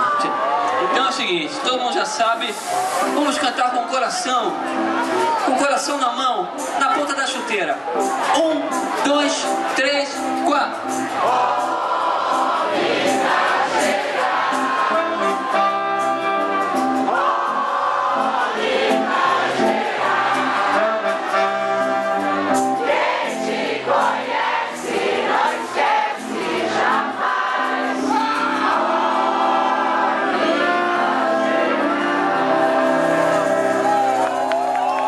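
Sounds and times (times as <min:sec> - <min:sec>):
live band music: 0:00.0 - 0:35.0
many voices singing together: 0:11.1 - 0:16.4, 0:17.0 - 0:34.2.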